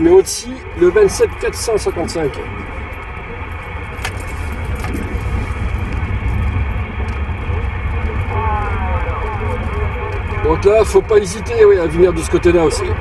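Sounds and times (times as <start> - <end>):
radio band noise hiss: 0.0 - 13.0.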